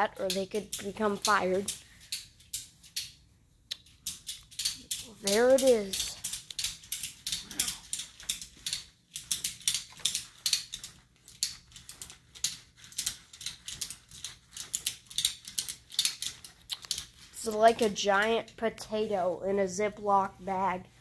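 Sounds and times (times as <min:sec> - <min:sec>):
ratchet strap clicks: 0:00.3 - 0:17.3.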